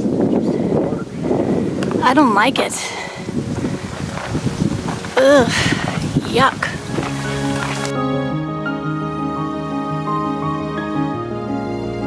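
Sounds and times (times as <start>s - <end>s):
wind buffeting microphone: 0.0s - 7.9s.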